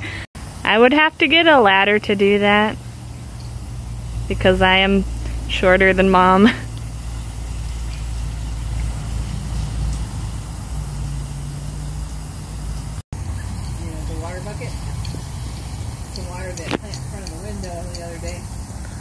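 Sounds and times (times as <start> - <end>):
water pouring from hose: 0.4 - 19.0.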